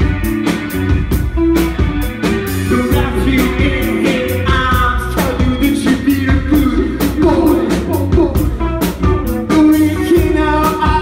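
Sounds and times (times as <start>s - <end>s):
bass guitar: 0.0s - 11.0s
electric guitar: 0.0s - 11.0s
steady drum beat: 0.0s - 11.0s.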